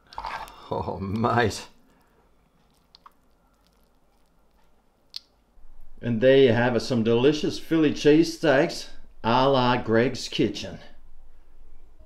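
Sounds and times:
soft squishes of food: 0:00.0 - 0:05.6.

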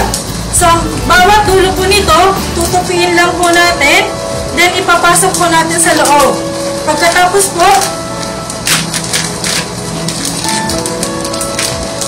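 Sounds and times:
background music: 0:00.0 - 0:12.0
plastic bag crinkling: 0:02.6 - 0:12.0.

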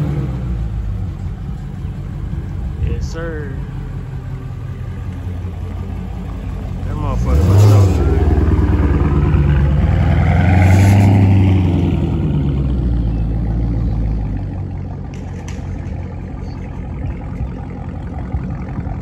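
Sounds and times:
car engine revving and driving off: 0:00.0 - 0:19.0.

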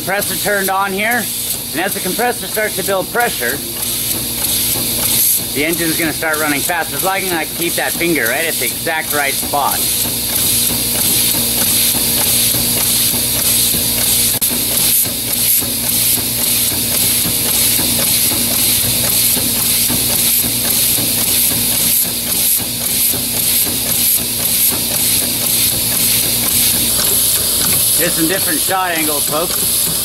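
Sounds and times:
air engine hissing and pulsing: 0:00.0 - 0:30.0.

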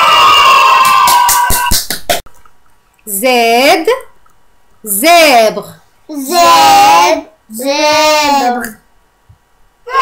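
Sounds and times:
children cheering and shouting: 0:00.0 - 0:01.7.

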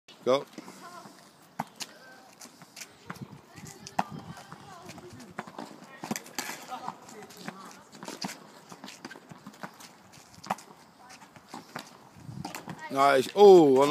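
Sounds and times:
racket hitting tennis ball: 0:03.0 - 0:12.8
ball bouncing on hard court: 0:03.8 - 0:09.8, 0:11.5 - 0:12.9.

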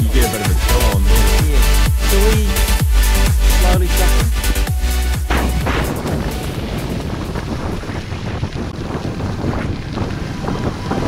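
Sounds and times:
wind buffeting microphone: 0:04.7 - 0:11.0.

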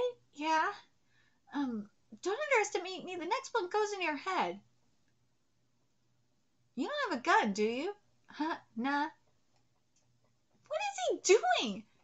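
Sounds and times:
woman speaking: 0:00.0 - 0:00.9, 0:01.5 - 0:04.6, 0:06.8 - 0:09.2, 0:10.7 - 0:11.9.

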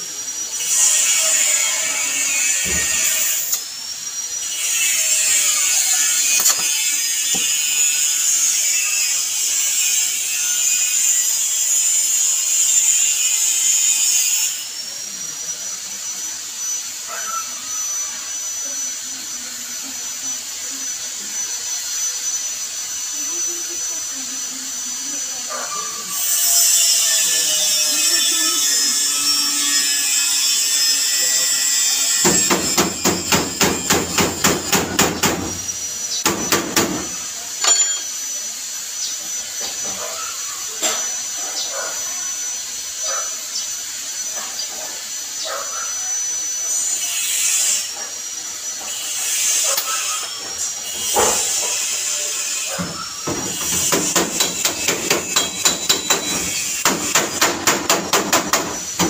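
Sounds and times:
welding torch hissing: 0:00.0 - 0:59.0.

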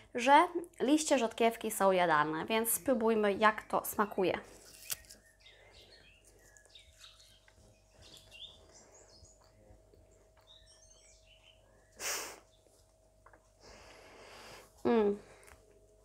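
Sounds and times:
faint steady hum: 0:00.0 - 0:16.0
birds chirping: 0:02.4 - 0:13.0
loud breathy burst: 0:12.0 - 0:12.5.

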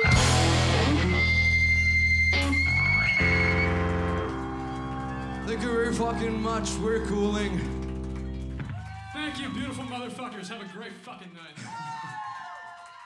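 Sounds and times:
punk rock band crashing chord: 0:00.0 - 0:01.5
guitar feedback whine: 0:00.0 - 0:08.8.

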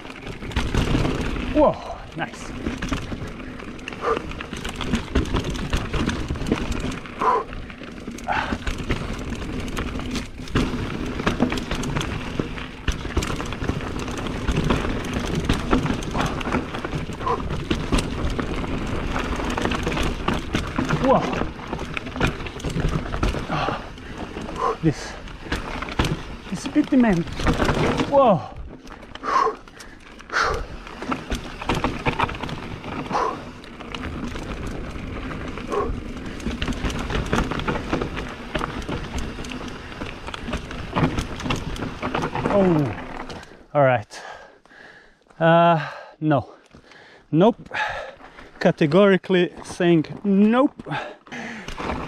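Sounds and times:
bike rattling clicks and knocks: 0:00.0 - 0:52.0
bike tyres rumbling on dirt: 0:00.0 - 0:52.0
rider breathing hard and grunting: 0:00.4 - 0:09.9, 0:11.8 - 0:38.0, 0:42.3 - 0:48.6, 0:50.6 - 0:52.0.

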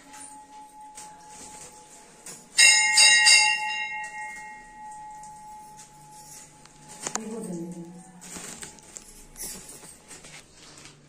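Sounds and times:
metal temple bell ringing: 0:00.0 - 0:09.6.

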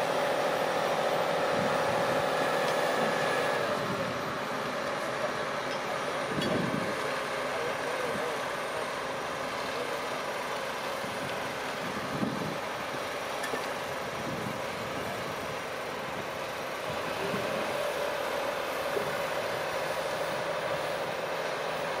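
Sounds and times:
diesel engine running: 0:00.0 - 0:22.0.

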